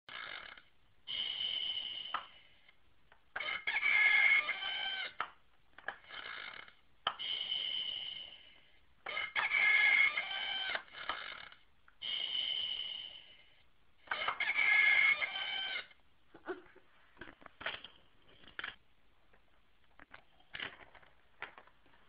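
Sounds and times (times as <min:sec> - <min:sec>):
high-pitched squealing calls: 0:03.4 - 0:05.2, 0:09.1 - 0:11.6, 0:14.1 - 0:16.0.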